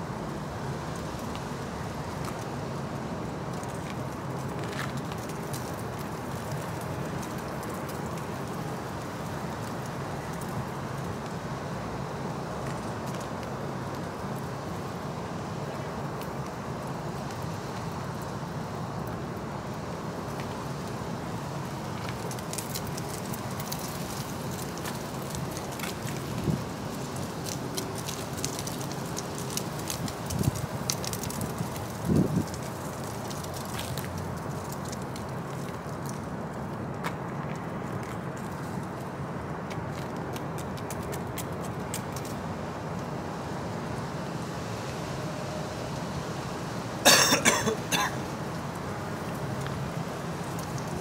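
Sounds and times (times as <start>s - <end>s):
outdoor background noise: 0.0s - 51.0s.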